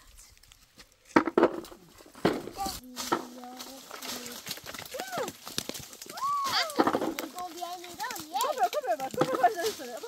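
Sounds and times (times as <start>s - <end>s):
hands rummaging through dry leaves: 2.6s - 10.0s.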